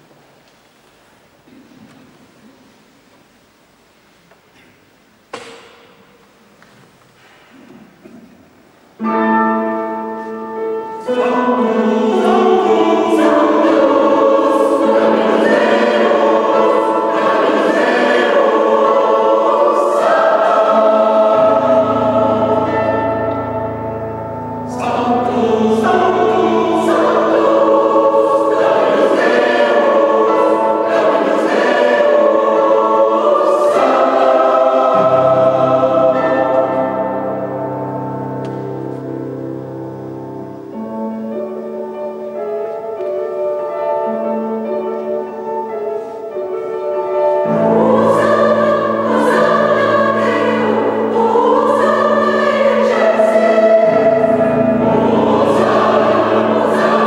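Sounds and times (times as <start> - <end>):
low sustained notes: 9.0 - 57.0
mixed choir singing: 10.0 - 39.6, 47.0 - 57.0.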